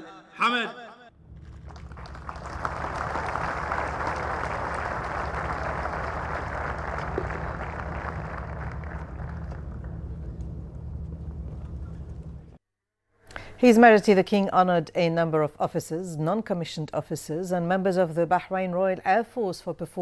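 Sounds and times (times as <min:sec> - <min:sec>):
steady low hum: 0:01.2 - 0:12.6
large crowd applauding: 0:01.4 - 0:10.4.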